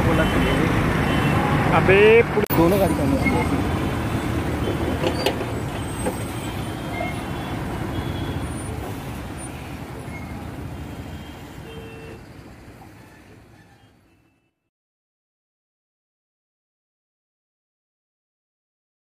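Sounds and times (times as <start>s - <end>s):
bus diesel engine: 0.0s - 14.3s
road traffic noise: 0.0s - 14.7s.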